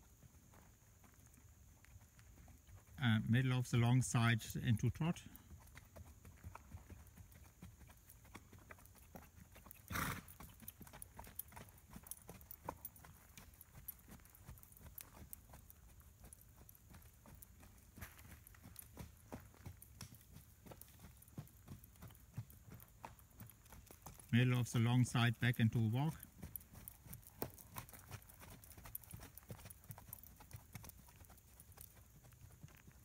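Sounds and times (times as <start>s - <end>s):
horse hoofbeats trotting on dirt: 0.0s - 33.0s.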